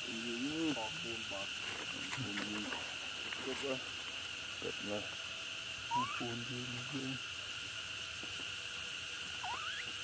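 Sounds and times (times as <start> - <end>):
high insect drone: 0.0 - 10.0.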